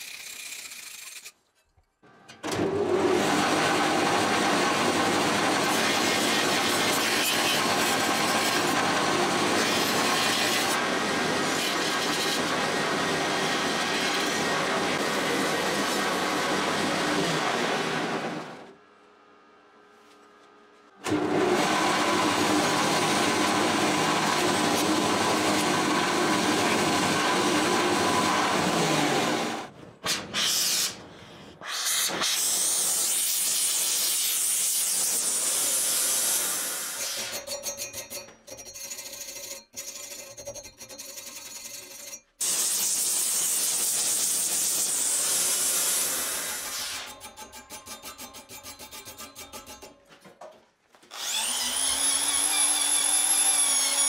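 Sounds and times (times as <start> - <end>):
bench grinder grinding steel: 0.0 - 18.6, 21.0 - 31.0, 32.1 - 50.0, 51.1 - 54.0.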